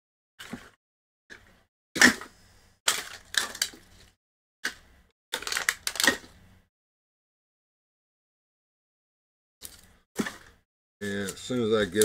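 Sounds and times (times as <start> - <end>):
wrappers crinkling: 5.4 - 6.3.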